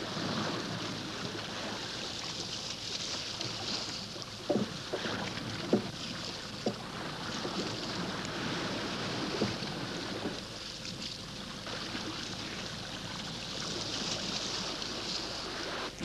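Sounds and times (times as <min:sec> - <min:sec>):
waves washing on pebbles: 0:00.0 - 0:04.1, 0:04.8 - 0:16.0.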